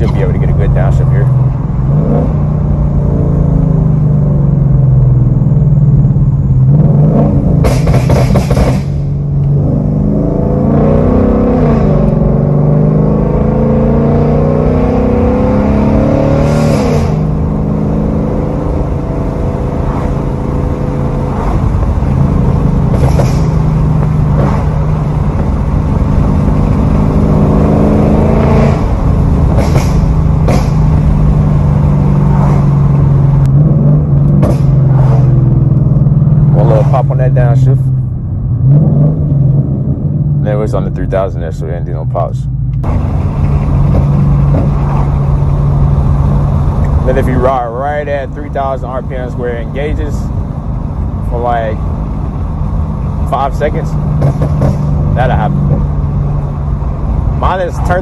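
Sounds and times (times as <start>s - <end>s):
car engine revving: 0.0s - 58.0s
exhaust pops and crackles: 7.6s - 9.6s, 22.8s - 27.0s, 28.8s - 31.4s, 34.2s - 35.0s, 41.9s - 50.3s, 53.2s - 58.0s.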